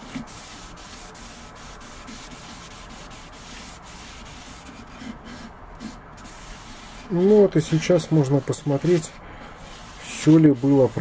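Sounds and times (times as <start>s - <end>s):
cloth scrubbing wooden board: 0.0s - 11.0s.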